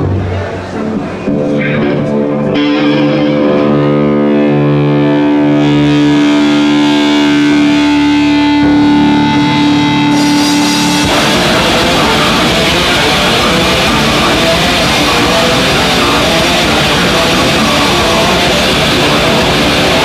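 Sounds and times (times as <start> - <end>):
distorted electric guitar: 0.0 - 20.0.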